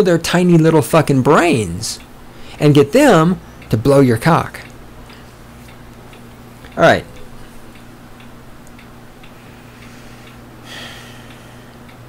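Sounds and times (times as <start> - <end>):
faint regular ticking: 0.0 - 12.0
low electrical hum: 0.0 - 12.0.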